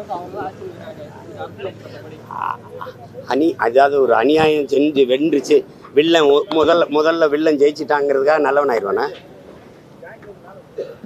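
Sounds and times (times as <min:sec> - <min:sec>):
faint background voices: 0:00.0 - 0:11.0.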